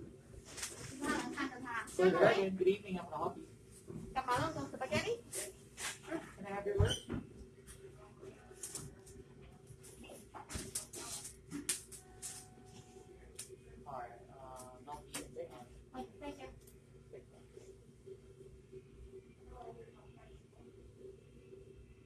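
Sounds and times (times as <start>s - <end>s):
steady low hum: 0.0s - 22.0s
person's voice: 0.8s - 3.4s, 4.2s - 5.5s.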